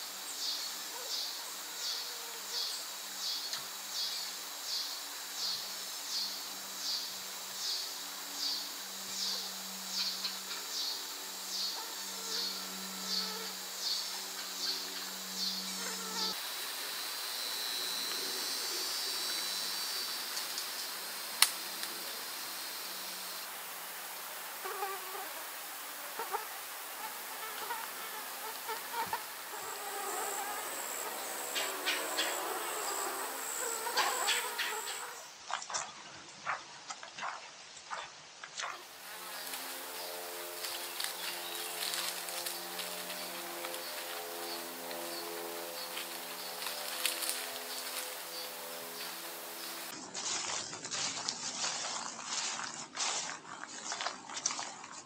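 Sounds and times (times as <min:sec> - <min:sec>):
insects chirping and buzzing: 0:00.0 - 0:36.0, 0:38.3 - 0:50.5.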